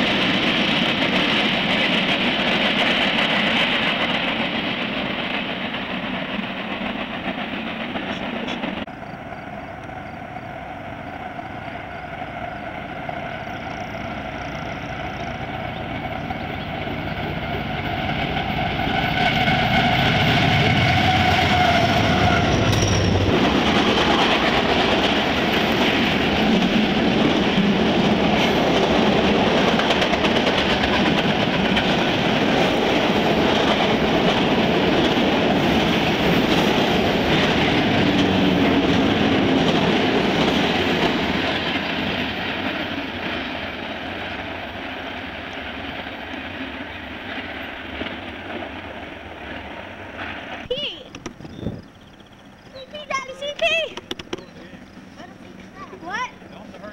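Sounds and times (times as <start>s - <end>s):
diesel locomotives rumbling: 0.0s - 56.9s
train wheels clicking over rail joints: 0.0s - 56.9s.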